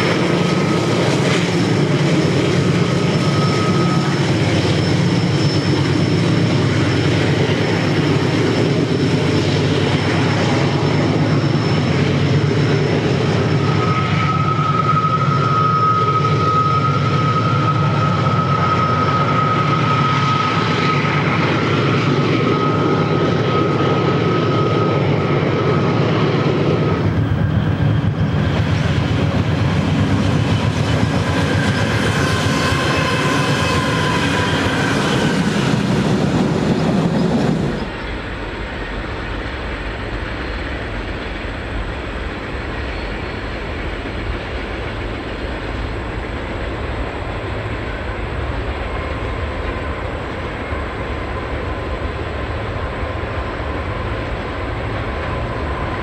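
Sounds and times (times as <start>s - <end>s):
high squeal: 0.0s - 46.0s
wheels rumbling on rail: 0.0s - 56.0s.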